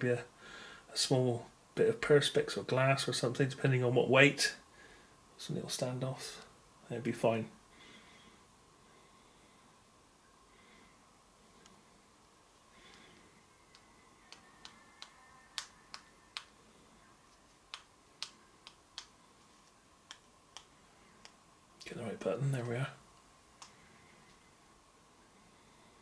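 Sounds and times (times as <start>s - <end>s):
faint steady whine: 0.0s - 26.0s.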